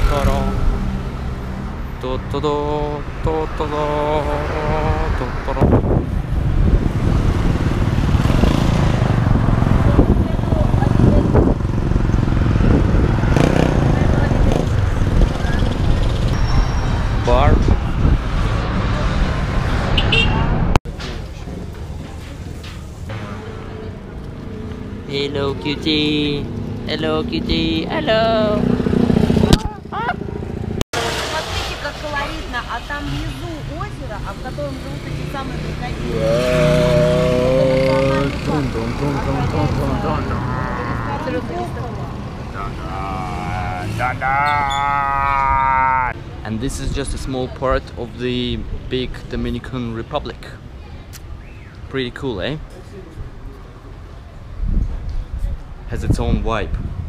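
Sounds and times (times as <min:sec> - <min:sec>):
indistinct voices: 0:00.0 - 0:01.2, 0:01.9 - 0:06.1, 0:31.0 - 0:46.6
traffic rumble: 0:00.0 - 0:57.0.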